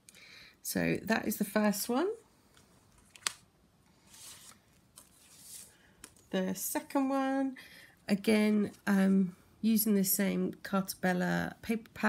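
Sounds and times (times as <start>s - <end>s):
soft papery swishes: 4.0s - 5.9s.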